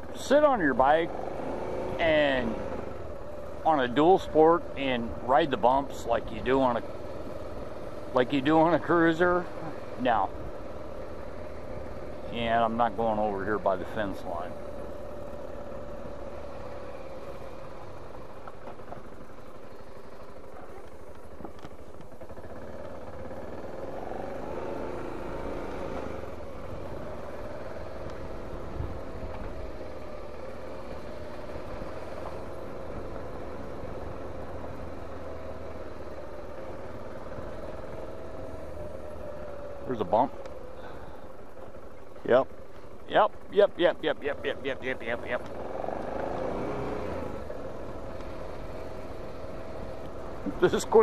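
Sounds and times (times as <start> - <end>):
motorcycle engine running slowly: 0.0 - 51.0.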